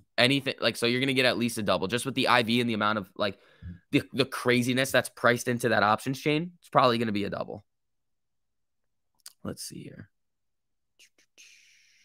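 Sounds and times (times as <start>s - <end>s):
soft breathy hiss: 11.0s - 12.0s.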